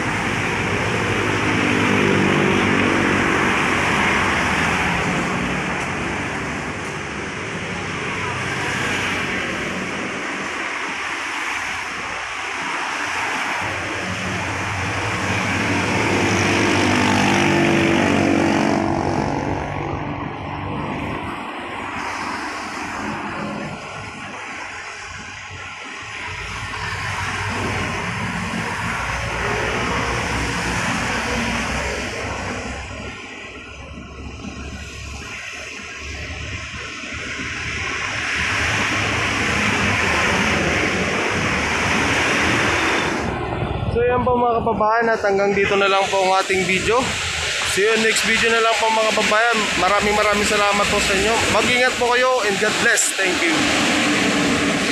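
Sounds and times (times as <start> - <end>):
car engines passing: 0.0 - 54.9
tyre hiss on wet road: 21.5 - 33.1, 45.5 - 54.9.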